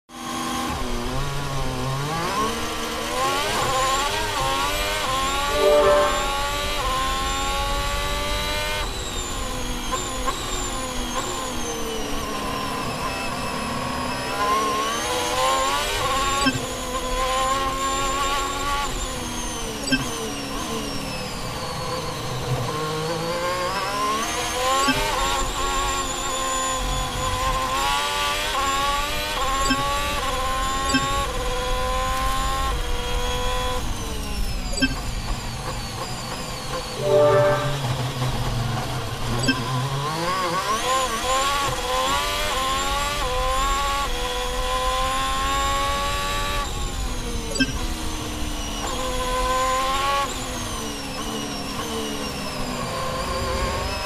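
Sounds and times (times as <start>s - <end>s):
racing car engine at full throttle: 0.2s - 37.0s, 37.9s - 54.0s.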